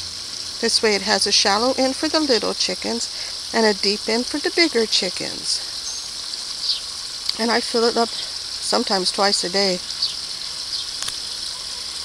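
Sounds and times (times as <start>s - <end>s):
high-pitched hiss: 0.0s - 12.0s.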